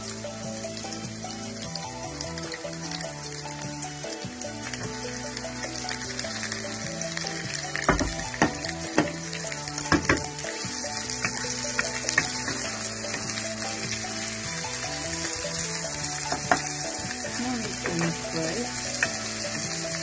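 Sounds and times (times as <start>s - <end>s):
onions sizzling in oil: 0.0s - 20.0s
spatula knocking against pan: 7.8s - 9.2s, 9.8s - 10.3s, 16.3s - 16.7s.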